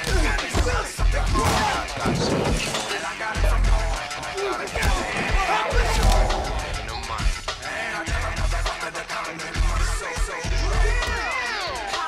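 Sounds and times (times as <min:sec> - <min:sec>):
film music: 0:00.0 - 0:12.0
shattering crash: 0:01.3 - 0:03.2.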